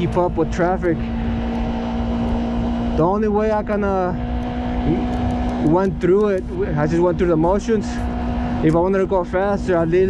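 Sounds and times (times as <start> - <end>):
motorcycle engine cruising: 0.0 - 10.0
wind and road noise: 0.0 - 10.0.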